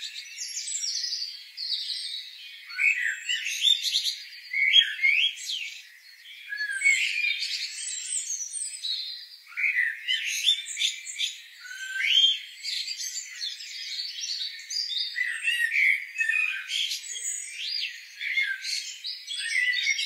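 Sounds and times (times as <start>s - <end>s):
songbirds chirping and trilling: 0.0s - 20.0s.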